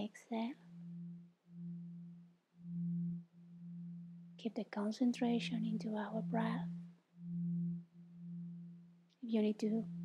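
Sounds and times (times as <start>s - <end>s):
low pulsing drone tone: 0.6s - 10.0s.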